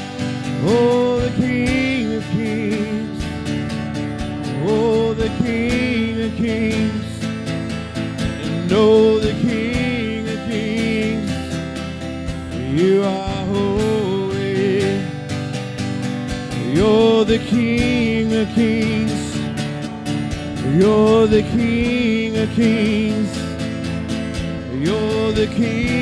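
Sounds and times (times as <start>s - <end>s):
acoustic guitar: 0.0s - 26.0s
keyboard: 0.0s - 26.0s.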